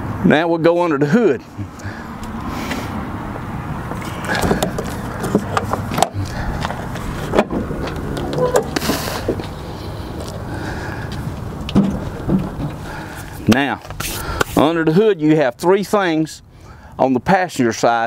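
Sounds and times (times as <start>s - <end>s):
clicks and knocks from truck hood: 4.3s - 6.2s, 11.7s - 12.8s.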